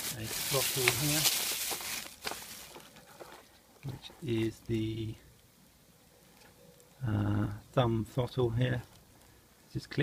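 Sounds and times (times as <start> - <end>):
plastic packaging rustling: 0.0 - 4.8.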